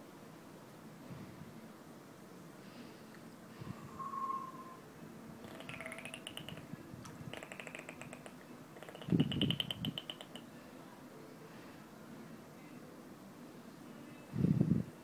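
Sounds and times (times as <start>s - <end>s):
dolphin-like whistles: 3.8s - 4.9s.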